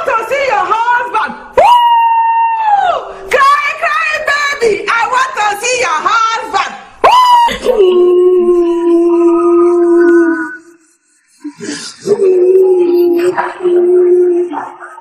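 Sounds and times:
woman wailing: 0:07.0 - 0:10.8, 0:11.6 - 0:14.9.

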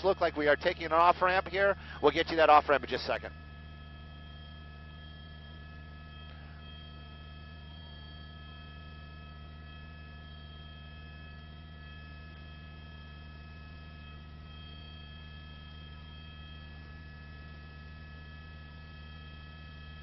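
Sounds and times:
faint high whines: 0:00.0 - 0:20.0
steady electrical hum: 0:00.0 - 0:20.0.

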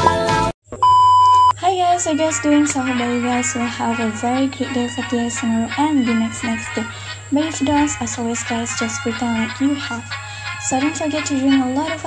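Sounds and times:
background music: 0:00.0 - 0:00.6
high electronic beep: 0:00.7 - 0:01.6
woman speaking: 0:01.6 - 0:12.0.

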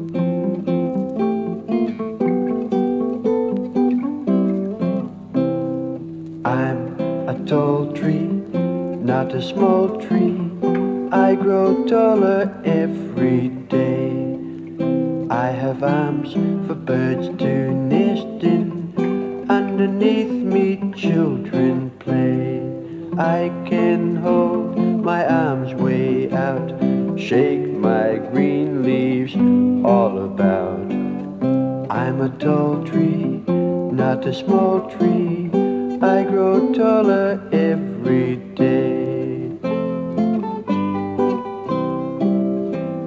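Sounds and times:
acoustic guitar folk music: 0:00.0 - 0:43.0.

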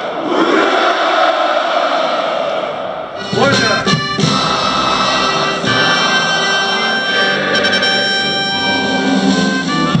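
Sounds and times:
brass band playing held chords: 0:03.2 - 0:10.0.

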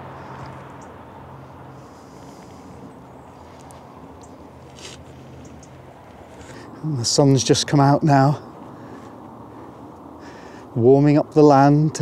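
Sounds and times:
light rustle: 0:01.8 - 0:06.8.

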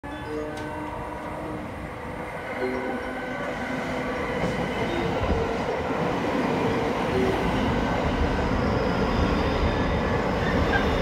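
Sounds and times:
electric train rumbling on rails: 0:00.0 - 0:11.0.

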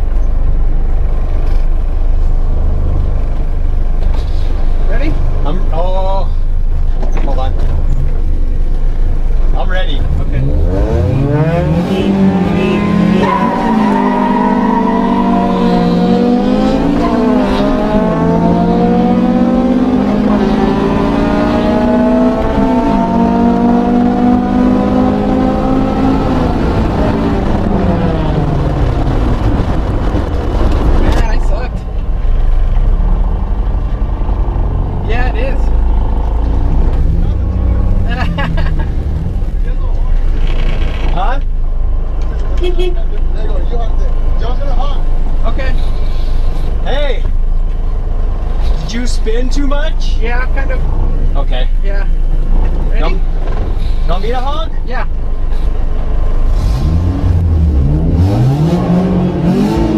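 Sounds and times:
wind and road noise: 0:00.0 - 0:59.9
car engine accelerating hard: 0:09.7 - 0:41.3, 0:47.2 - 0:59.9.

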